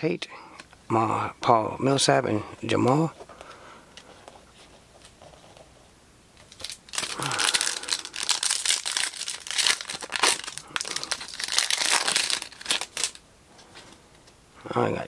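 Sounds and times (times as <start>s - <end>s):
foil wrapper tearing and crinkling: 6.5s - 13.2s.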